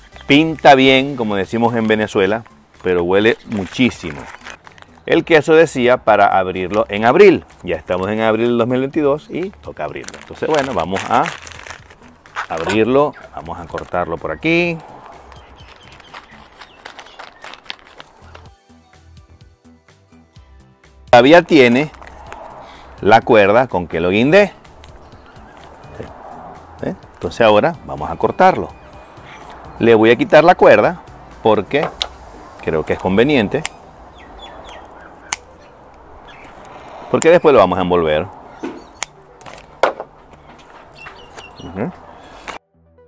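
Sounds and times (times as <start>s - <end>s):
plastic packaging crackling: 3.4s - 5.1s, 9.3s - 18.5s.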